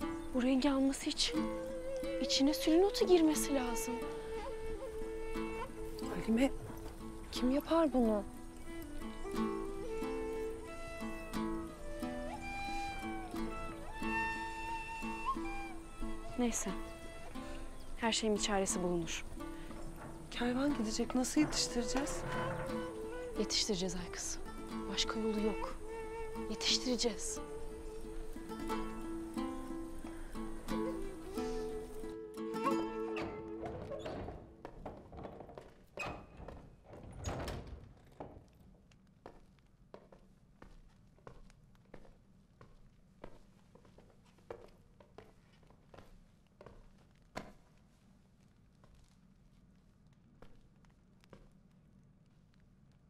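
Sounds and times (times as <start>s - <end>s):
background score music: 0.0s - 34.7s.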